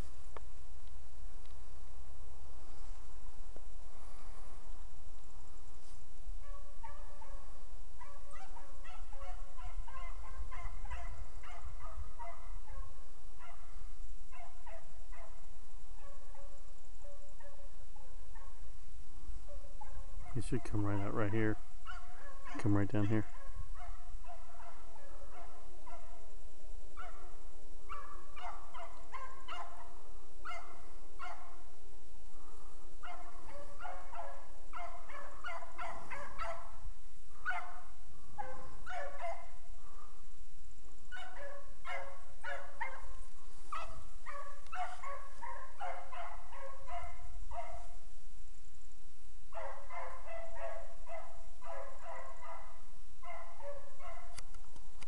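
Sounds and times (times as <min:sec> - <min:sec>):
dogs baying: 0:19.5 - 0:26.3, 0:27.0 - 0:31.6, 0:32.4 - 0:36.8, 0:37.4 - 0:40.1, 0:41.1 - 0:48.0, 0:49.6 - 0:54.3.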